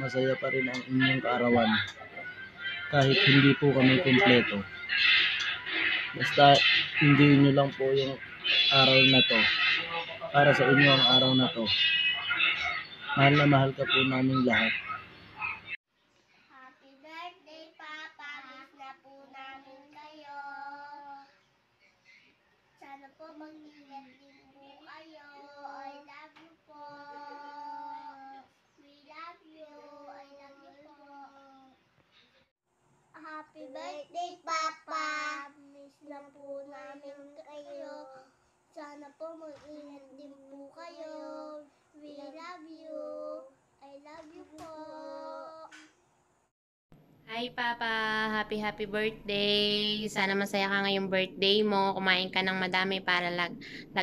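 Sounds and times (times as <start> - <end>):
young child singing softly: 16.5 - 21.4, 22.8 - 31.8, 33.2 - 45.8
young children singing: 44.2 - 45.9.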